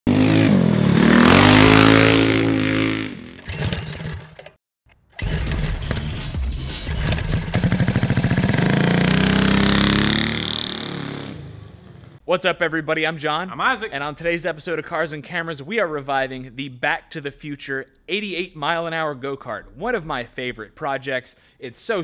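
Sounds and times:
engine revving sound effect: 0:00.1 - 0:03.4, 0:05.2 - 0:12.2
go-kart engine passing: 0:00.1 - 0:03.4, 0:07.5 - 0:12.2.

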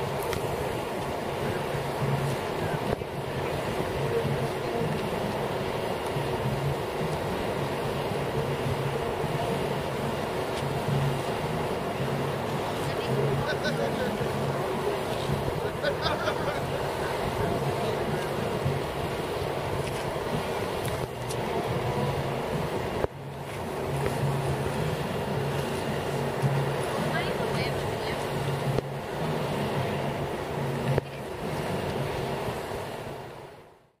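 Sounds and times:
people talking outdoors: 0:00.0 - 0:33.0
steady background hiss: 0:00.0 - 0:33.8.

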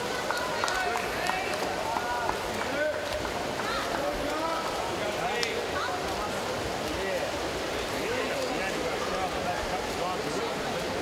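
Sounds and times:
swimmers splashing: 0:00.0 - 0:11.0.

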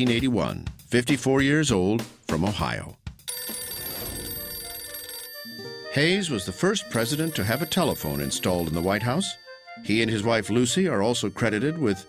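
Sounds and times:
telephone bell ringing: 0:03.3 - 0:12.0.

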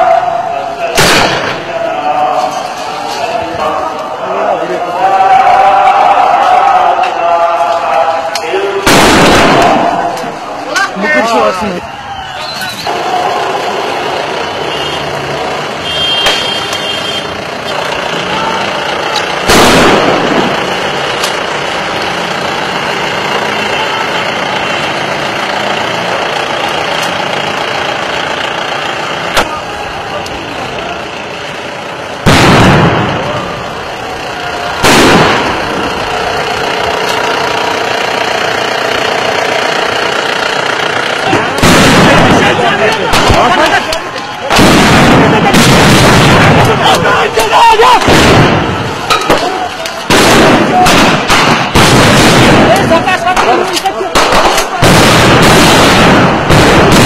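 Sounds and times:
vehicle engines: 0:00.0 - 0:57.0
voices: 0:00.0 - 0:57.0
loud bangs of shells fired: 0:01.0 - 0:01.8, 0:08.8 - 0:10.2, 0:19.4 - 0:20.8, 0:34.8 - 0:35.9, 0:41.3 - 0:47.4, 0:48.0 - 0:57.0.

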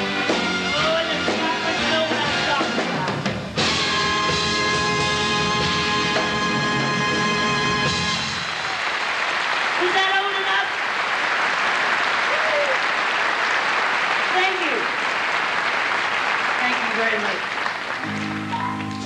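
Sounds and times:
band playing held chord: 0:03.6 - 0:08.4
audience applauding: 0:07.2 - 0:19.0
voices over clapping: 0:08.5 - 0:19.0.

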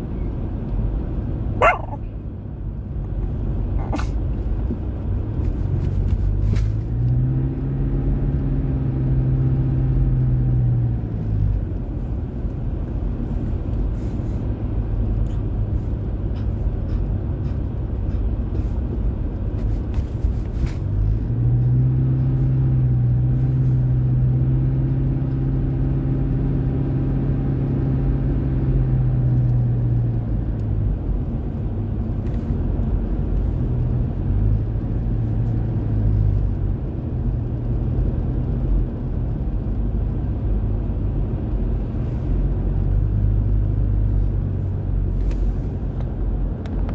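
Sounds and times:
car road noise rumble: 0:00.0 - 0:46.9.

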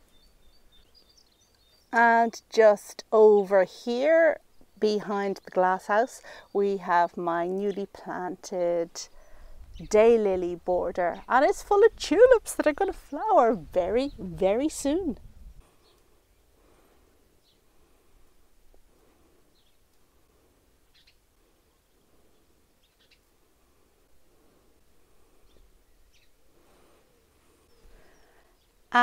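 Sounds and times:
faint bird chirps: 0:20.8 - 0:23.3, 0:25.2 - 0:29.0.

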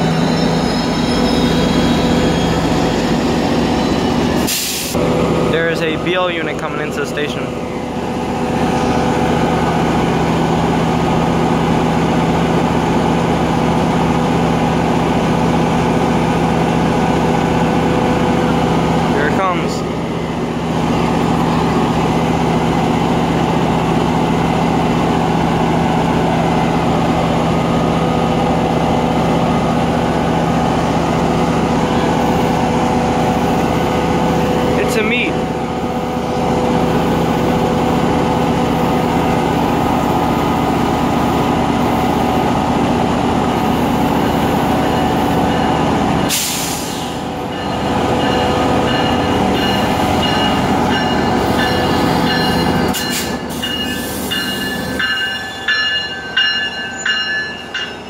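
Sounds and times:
diesel locomotive idling: 0:00.0 - 0:58.0.

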